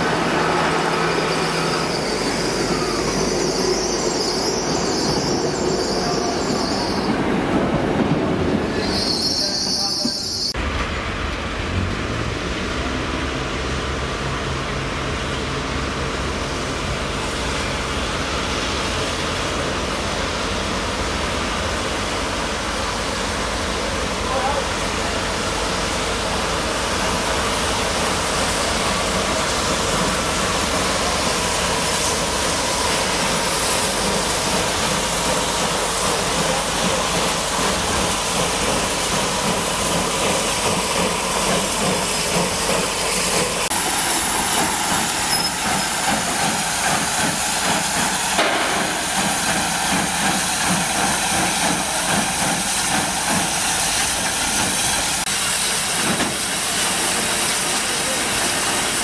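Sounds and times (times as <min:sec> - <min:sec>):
steam hissing: 0:00.0 - 0:07.2, 0:17.1 - 0:59.0
steam locomotive rolling slowly: 0:00.0 - 0:59.0.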